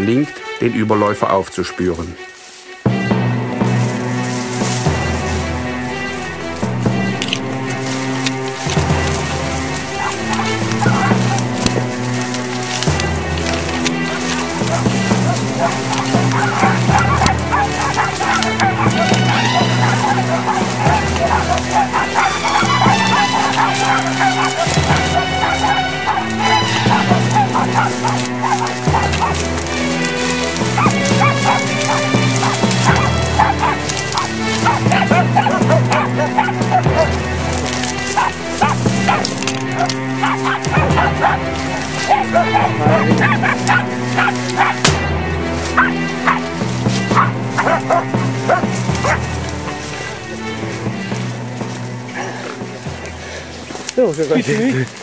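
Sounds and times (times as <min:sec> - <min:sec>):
background music with bass: 0:00.0 - 0:55.0
dogs barking and baying: 0:03.1 - 0:55.0.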